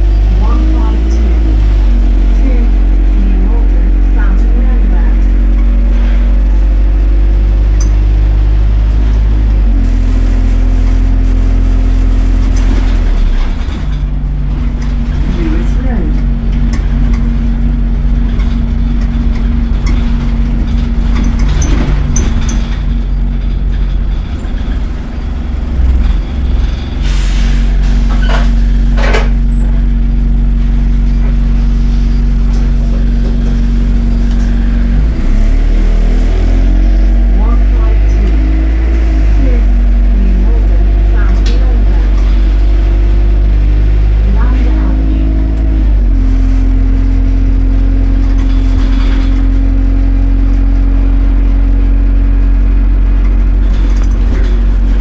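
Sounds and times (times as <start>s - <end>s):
bus diesel engine droning: 0.0s - 55.0s
short air hisses: 27.0s - 27.8s.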